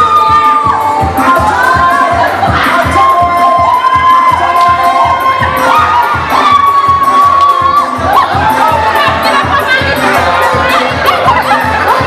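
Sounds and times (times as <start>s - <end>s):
crowd shouting and cheering: 0.0s - 12.0s
dance music with fast beat: 0.0s - 12.0s.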